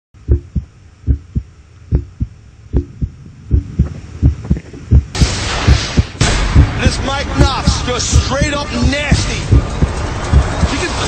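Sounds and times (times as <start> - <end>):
heartbeat thumps: 0.2 - 10.9
loud wash of noise: 4.3 - 11.0.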